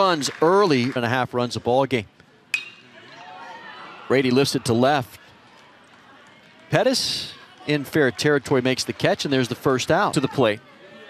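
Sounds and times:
ballpark crowd noise: 0.0s - 11.0s
metal bat hitting ball: 2.5s - 3.0s.

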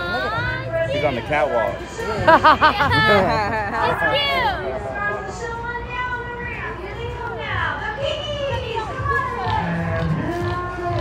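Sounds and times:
children chattering and calling out: 0.0s - 10.9s.

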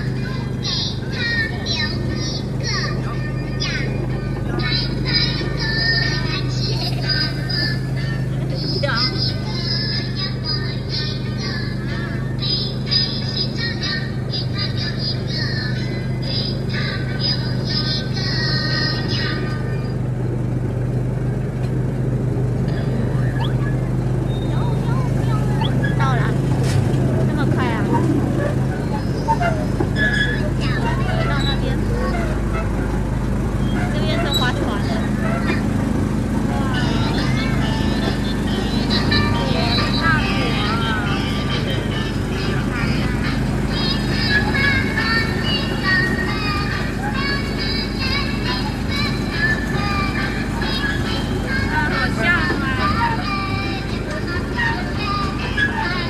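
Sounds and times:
train engine humming: 0.0s - 56.0s
voices: 0.0s - 56.0s.

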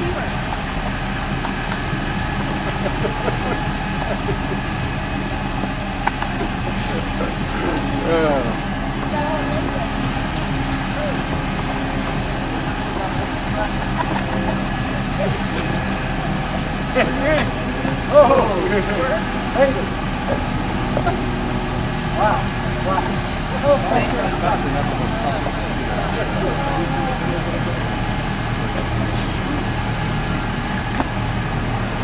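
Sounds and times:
car engine idling: 0.0s - 32.0s
people talking and laughing: 0.0s - 32.0s.

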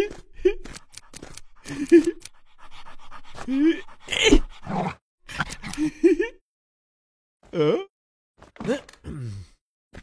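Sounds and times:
cartoon dog panting and snarling: 0.3s - 6.0s.

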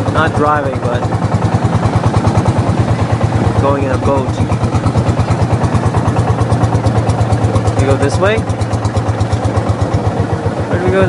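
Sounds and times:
boat engine chugging: 0.0s - 11.0s.

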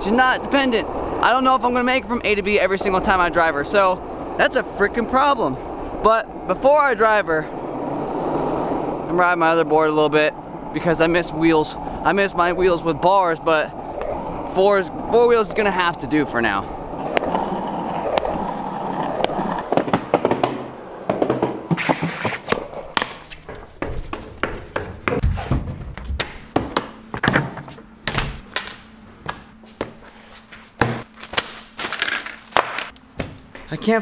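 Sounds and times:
skateboard rolling on asphalt: 0.1s - 24.6s.

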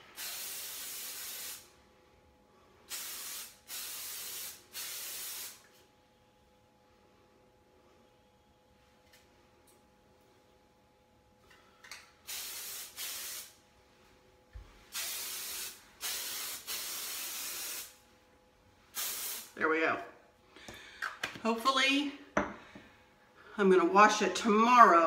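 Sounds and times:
aerosol hairspray hissing: 0.0s - 1.7s, 2.9s - 5.6s, 12.3s - 13.6s, 14.9s - 18.0s, 19.0s - 19.5s.

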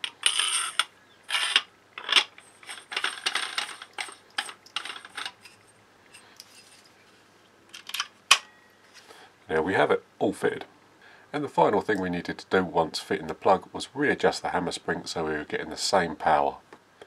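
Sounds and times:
metal threads scraping: 0.0s - 7.2s.

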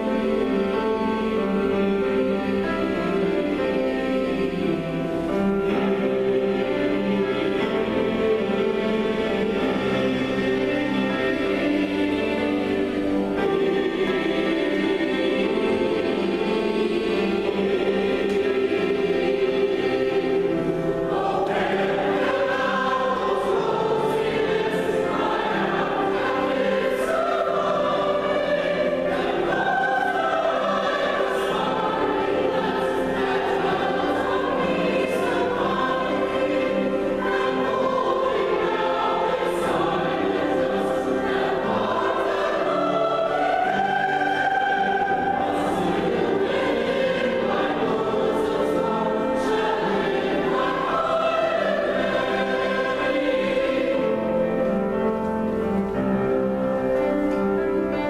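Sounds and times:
mixed choir singing: 0.0s - 58.0s
piano accompaniment: 0.0s - 58.0s.

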